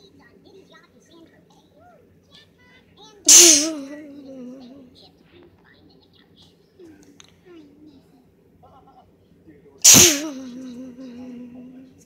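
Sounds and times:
loud sneeze: 3.3 - 4.0, 9.8 - 10.7
drawn-out voiced sound: 3.3 - 4.9, 9.8 - 11.9.

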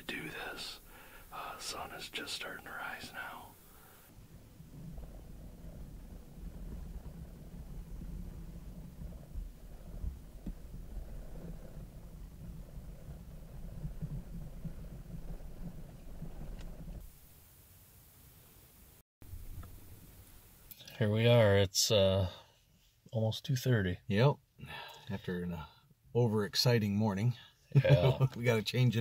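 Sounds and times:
low uneven rumble: 0.0 - 20.6.

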